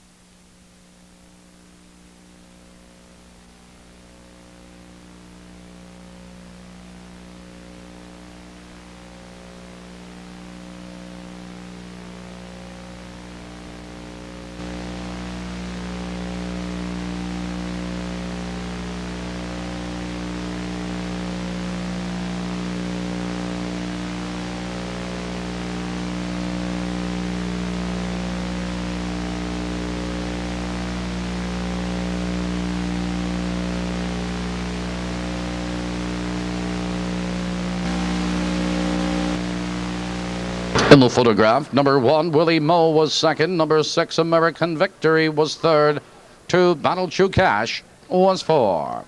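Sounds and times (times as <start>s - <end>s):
electrical hum with buzzing: 0.0s - 48.1s
constant hiss: 0.0s - 49.0s.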